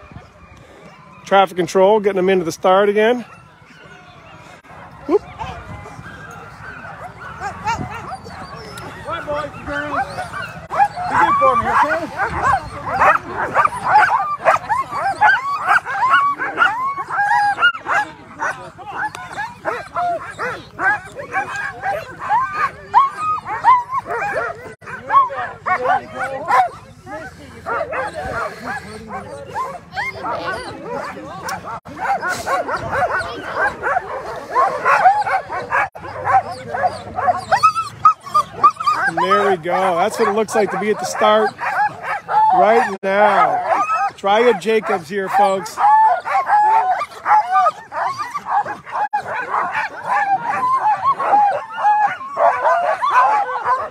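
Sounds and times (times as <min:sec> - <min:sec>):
sled dogs barking and yelping: 0:00.0 - 0:53.9.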